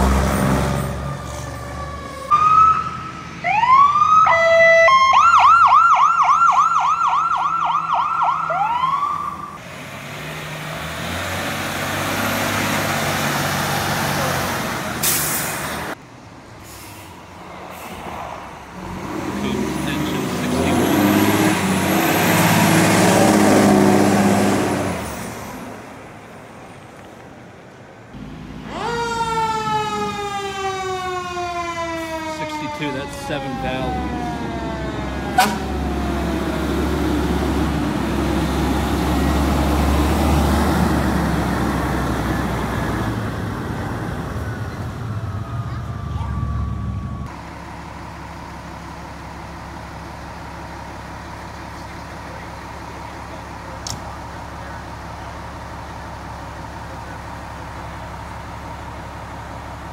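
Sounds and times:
heavy truck engine passing: 0.0s - 3.5s, 9.0s - 59.9s
siren with falling pitch: 0.8s - 9.6s, 28.4s - 37.4s, 43.2s - 47.5s
electronic siren yelping: 1.8s - 9.6s, 28.6s - 36.4s, 44.3s - 47.3s.

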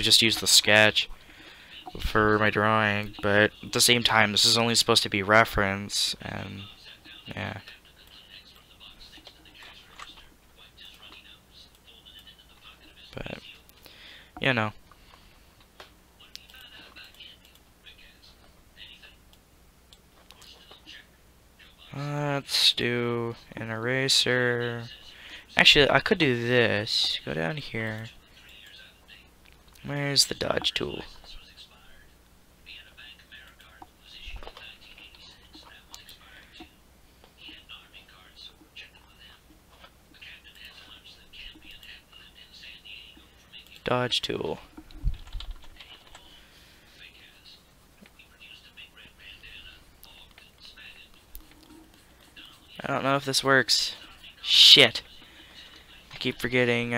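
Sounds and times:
low steady hum: 0.0s - 56.9s
soft hissy sounds: 0.0s - 56.9s
person whispering: 16.2s - 19.2s, 32.7s - 36.8s, 37.4s - 39.5s, 40.1s - 56.9s.

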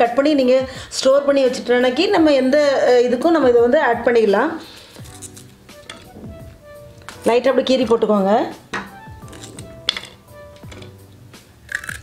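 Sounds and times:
woman speaking: 0.0s - 4.7s, 7.2s - 8.6s.

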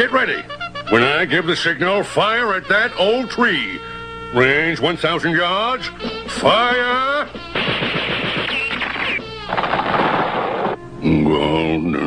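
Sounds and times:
cartoon machine-gun fire: 7.5s - 10.8s
falling whistle tone: 8.4s - 9.2s.

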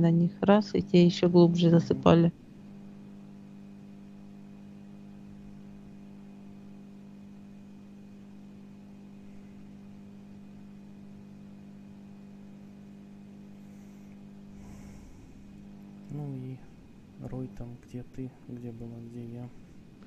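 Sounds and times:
faint electrical hum: 0.0s - 20.0s.

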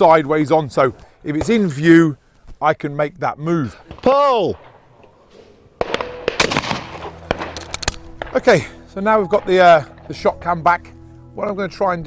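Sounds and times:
sharp cracks and clicks: 5.8s - 8.5s
shotgun firing: 5.8s - 8.8s.

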